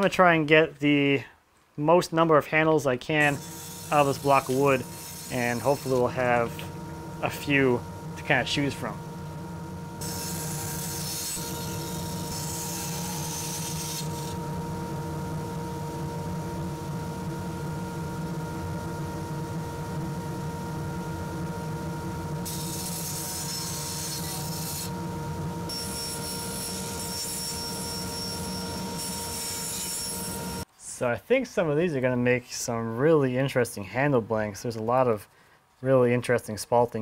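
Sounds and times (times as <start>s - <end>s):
blade cutting wood hiss: 3.2s - 6.2s, 22.4s - 24.9s
bandsaw running: 3.2s - 7.6s, 10.0s - 14.4s, 22.4s - 25.0s, 25.7s - 30.6s.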